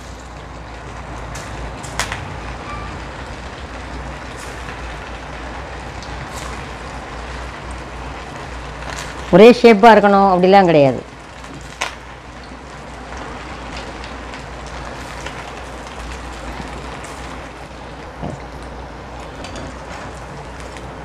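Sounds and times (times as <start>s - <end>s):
hot oil sizzling: 0.0s - 21.0s.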